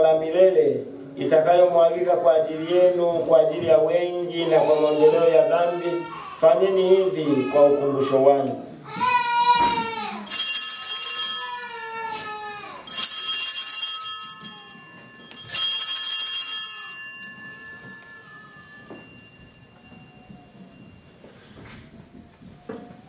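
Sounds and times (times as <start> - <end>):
altar bells ringing: 10.3 - 21.7.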